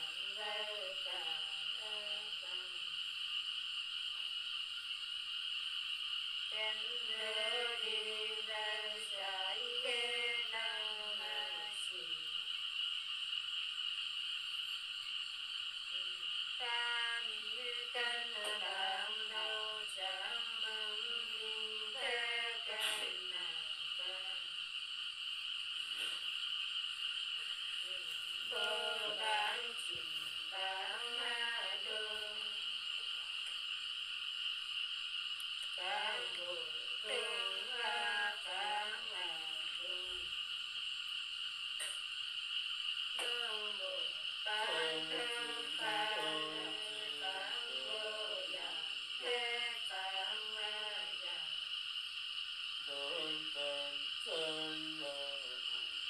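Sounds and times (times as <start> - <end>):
woman singing folk song: 0.0 - 2.7, 6.6 - 12.1, 16.6 - 24.4, 28.5 - 32.6, 35.8 - 40.2, 43.2 - 51.5
insects chirring: 0.0 - 56.0.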